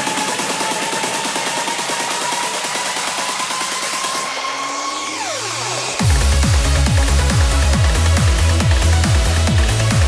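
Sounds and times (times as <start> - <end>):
kick drum and bass: 0.0 - 4.5, 5.2 - 10.0.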